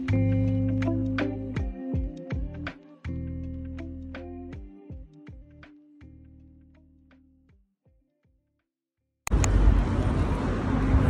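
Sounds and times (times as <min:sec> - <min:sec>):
street traffic rumble: 0:09.3 - 0:11.0.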